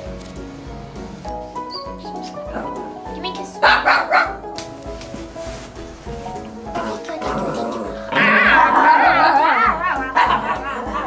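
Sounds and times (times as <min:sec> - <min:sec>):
background music with steady beat: 0:00.0 - 0:11.0
dog barking: 0:03.6 - 0:04.4, 0:10.1 - 0:10.4.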